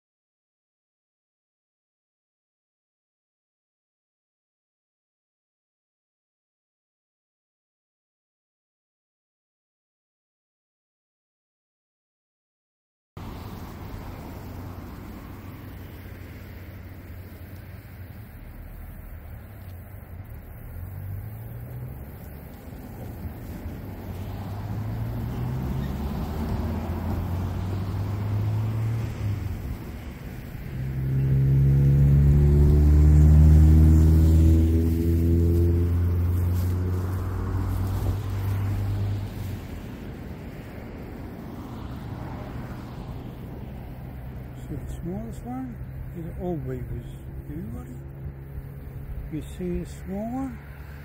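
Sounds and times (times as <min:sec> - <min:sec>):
vehicle engine passing: 0:13.2 - 0:51.0.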